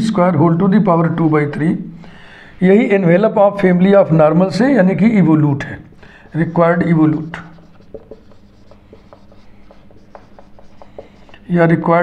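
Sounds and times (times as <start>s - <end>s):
marker scratching on whiteboard: 6.0s - 12.0s.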